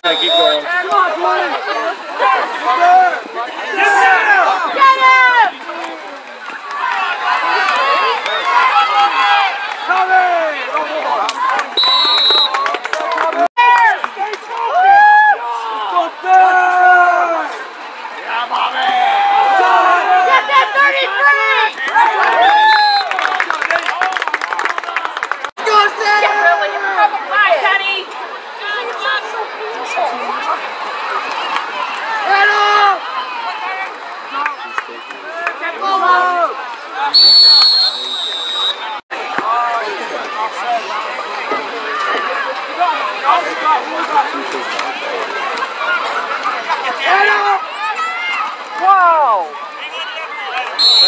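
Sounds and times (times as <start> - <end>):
many voices shouting: 0.0 - 24.2, 25.6 - 51.0
high whistle blast: 37.1 - 39.0, 50.8 - 51.0.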